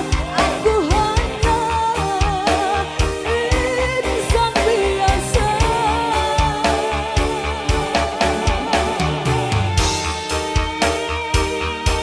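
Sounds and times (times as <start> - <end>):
woman singing: 0.0 - 10.1
bass: 0.0 - 12.0
electric guitar: 0.0 - 12.0
keyboards: 0.0 - 12.0
steady drum beat: 0.0 - 12.0.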